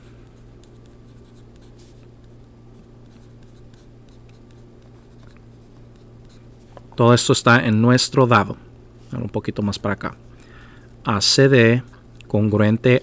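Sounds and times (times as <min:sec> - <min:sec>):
steady low hum: 0:00.0 - 0:13.0
pencil scratching on paper: 0:02.8 - 0:06.5.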